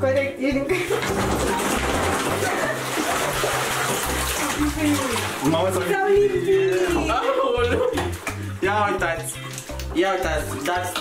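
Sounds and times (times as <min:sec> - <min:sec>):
water splashing in a bathtub: 0:00.7 - 0:11.0.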